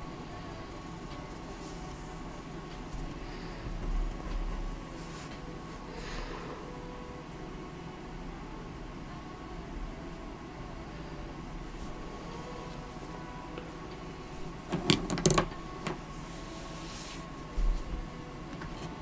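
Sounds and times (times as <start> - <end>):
faint steady hum: 0.0 - 19.0
sharp clicks and knocks: 14.7 - 16.0.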